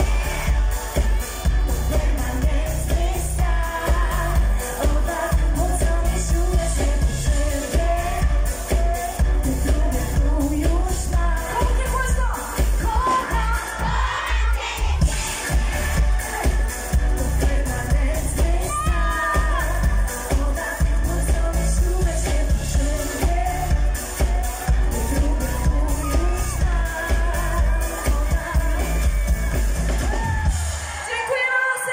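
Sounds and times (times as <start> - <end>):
heavy bass beat: 0.0 - 30.8
dance-pop music over loudspeakers: 0.0 - 31.9
woman singing: 0.0 - 31.9.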